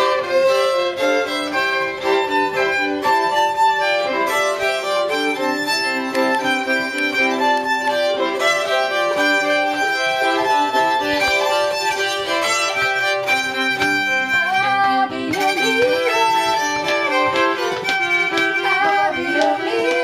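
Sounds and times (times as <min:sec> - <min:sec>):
fiddles playing sustained notes: 0:00.0 - 0:20.0.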